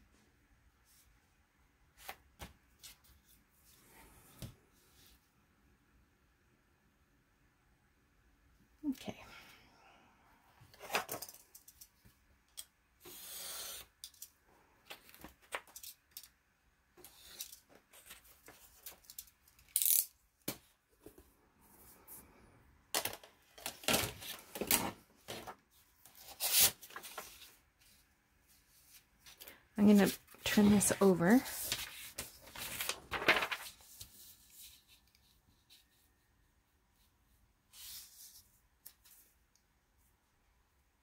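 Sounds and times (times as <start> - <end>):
paper rustling: 23.7 - 27.6, 28.6 - 36.1.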